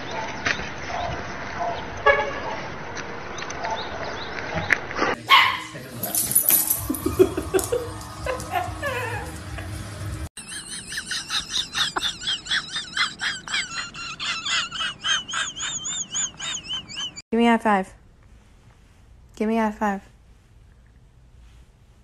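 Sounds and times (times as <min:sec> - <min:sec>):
dogs barking and yipping: 0:00.0 - 0:04.3, 0:04.9 - 0:17.2.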